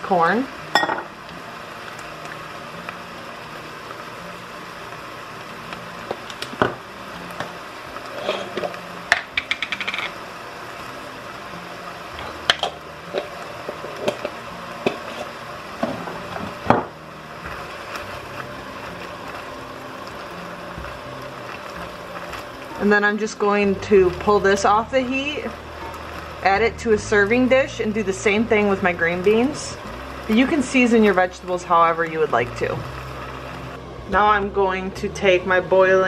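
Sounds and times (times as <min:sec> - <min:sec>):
low steady sizzle: 0:00.0 - 0:36.0.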